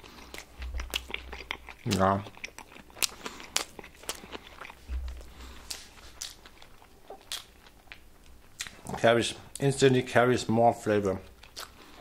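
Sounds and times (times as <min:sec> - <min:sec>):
person chewing a burger: 0:00.0 - 0:09.6, 0:11.2 - 0:12.0.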